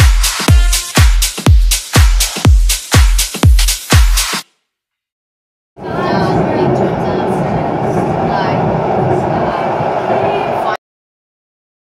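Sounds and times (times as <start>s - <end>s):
passengers talking: 5.8s - 10.8s
tram running noise: 5.8s - 10.8s.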